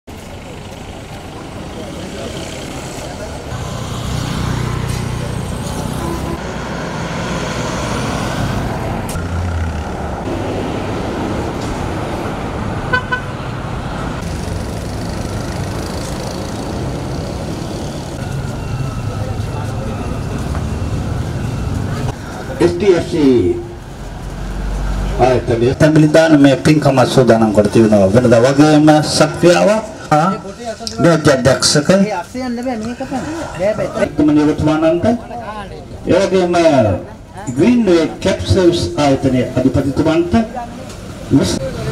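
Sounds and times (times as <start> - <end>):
passing traffic: 0.0 - 41.9
indistinct crowd voices: 0.1 - 6.5, 15.8 - 41.9
vehicle horn beep: 5.9 - 6.4, 12.9 - 13.4.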